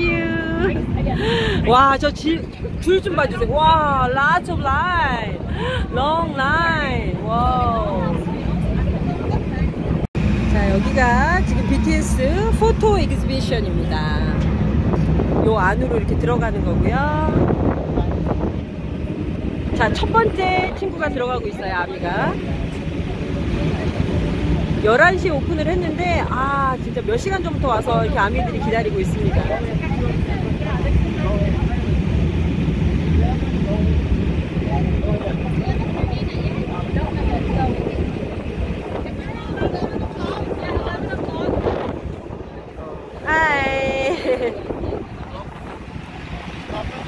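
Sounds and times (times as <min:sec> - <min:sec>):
faint voices: 0:00.0 - 0:47.0
indistinct chatter: 0:00.0 - 0:47.0
wind buffeting microphone: 0:00.0 - 0:47.0.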